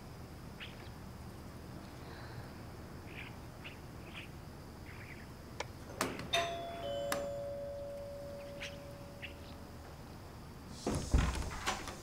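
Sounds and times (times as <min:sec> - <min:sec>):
doorbell button click: 0:06.4 - 0:08.2
two-note ding-dong chime: 0:06.4 - 0:09.2
heavy wooden door thumping: 0:10.8 - 0:12.0.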